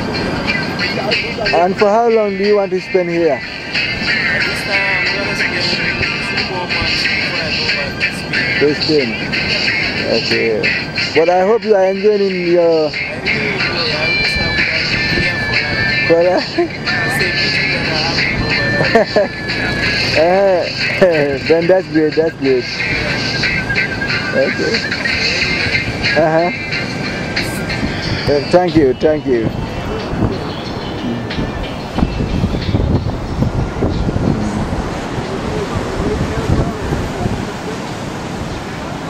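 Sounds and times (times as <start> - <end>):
music: 0.0 - 37.4
noisy background: 0.0 - 39.0
surf on beach: 0.0 - 39.0
wind buffeting microphone: 0.0 - 39.0.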